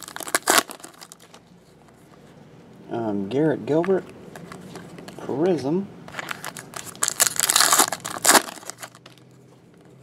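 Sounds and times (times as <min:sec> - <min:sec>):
foil wrapper crinkling: 0:00.0 - 0:01.4, 0:06.1 - 0:09.2.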